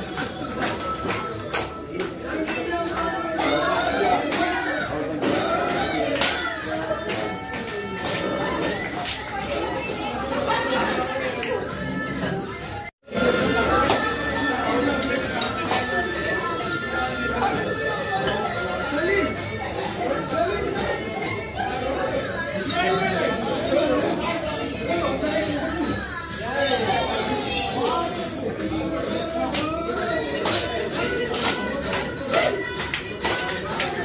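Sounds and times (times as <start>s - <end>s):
babble of overlapping voices: 0.0s - 34.0s
chatter of many people: 0.0s - 34.0s
music playing: 0.0s - 34.0s.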